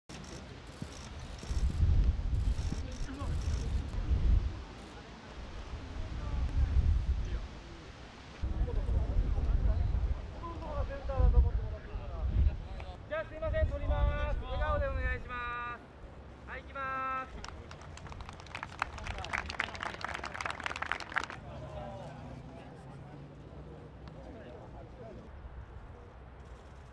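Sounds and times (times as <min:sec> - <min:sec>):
wind buffeting microphone: 0:01.2 - 0:04.7, 0:05.5 - 0:07.5, 0:08.4 - 0:12.8, 0:13.4 - 0:15.3
scattered handclaps: 0:17.3 - 0:21.5
chatter: 0:17.3 - 0:26.9.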